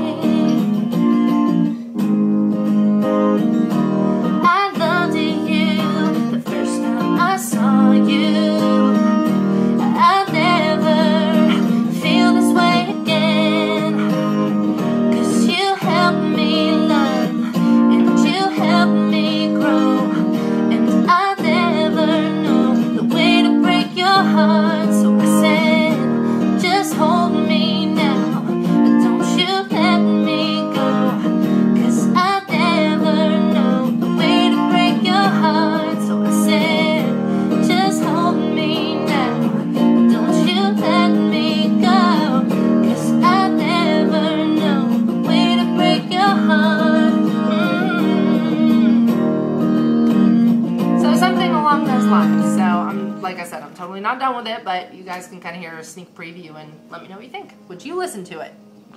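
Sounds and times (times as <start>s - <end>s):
woman singing country song: 0.0s - 1.9s, 2.6s - 57.7s.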